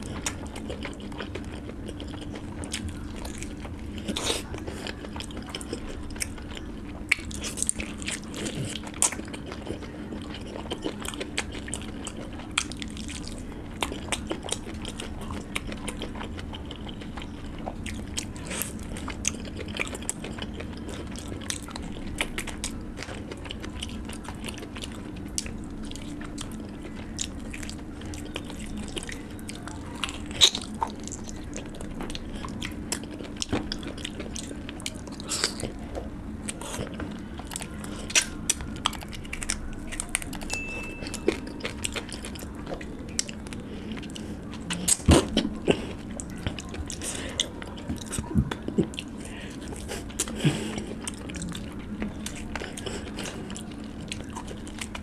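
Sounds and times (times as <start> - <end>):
faint low hum: 0.0 - 55.0
wet chewing mouth sounds: 0.0 - 55.0.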